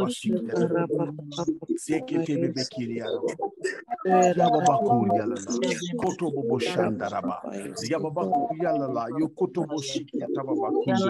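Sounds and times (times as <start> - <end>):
man praying: 0.0 - 11.0.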